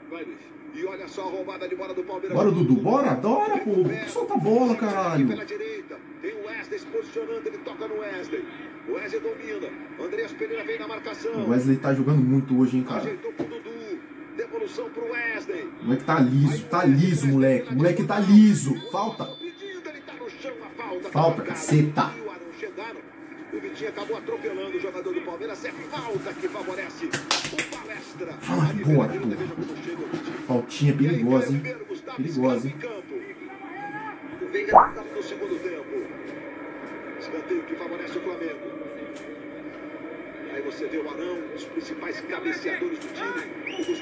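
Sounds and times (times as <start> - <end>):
football commentator talking: 1.0 - 5.6, 10.3 - 13.9, 14.8 - 19.5, 20.2 - 22.2, 28.4 - 29.7, 30.5 - 33.1, 34.7 - 35.1
commentator talking: 15.9 - 19.4, 34.7 - 35.1
stadium crowd sound: 34.7 - 35.1.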